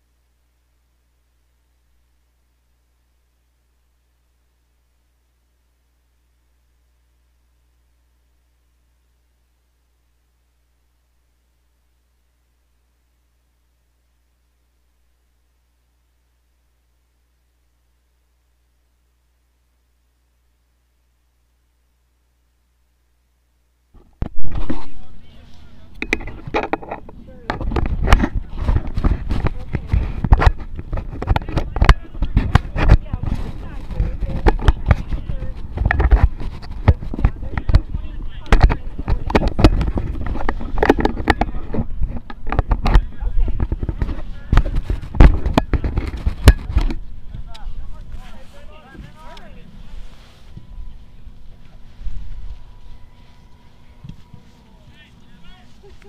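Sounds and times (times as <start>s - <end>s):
faint distant voices: 24.4s - 56.0s
camera handling knocks and rumbles: 26.0s - 33.3s, 38.5s - 47.0s.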